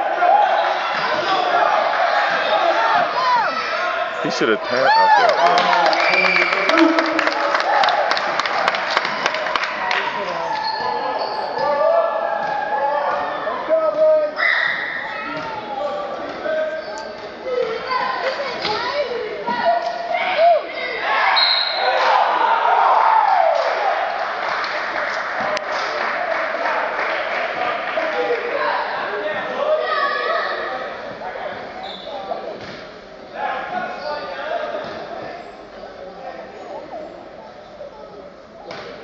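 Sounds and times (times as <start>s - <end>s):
spectators talking: 0.0s - 23.0s, 23.9s - 39.0s
murmur of crowd chatter: 0.0s - 39.0s.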